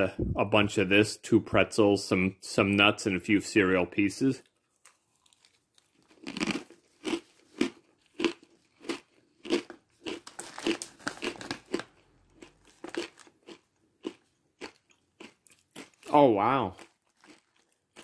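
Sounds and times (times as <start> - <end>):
person chewing crunchy food: 4.4 - 18.0.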